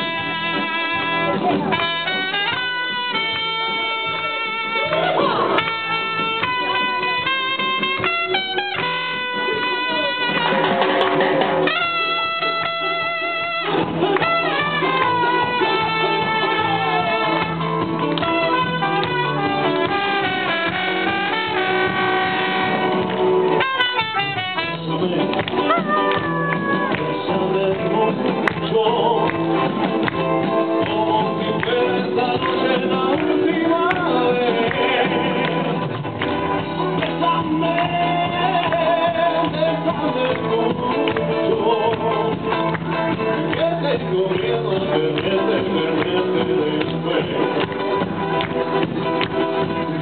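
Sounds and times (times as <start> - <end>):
long held wind instrument notes: 0.0 - 10.6, 11.6 - 25.1
mariachi band playing: 0.0 - 50.0.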